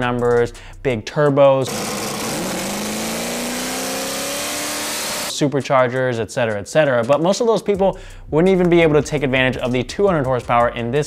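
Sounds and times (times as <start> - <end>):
car engine accelerating: 1.7 - 5.3.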